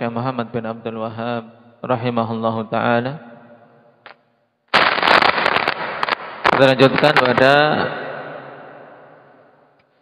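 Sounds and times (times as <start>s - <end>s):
loud crackling burst: 4.7s - 8.8s.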